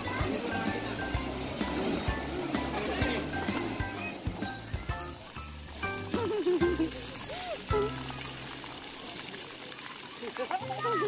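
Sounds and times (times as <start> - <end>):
music playing: 0.0 - 8.7
fountain jets spraying on wet tiles: 0.0 - 11.0.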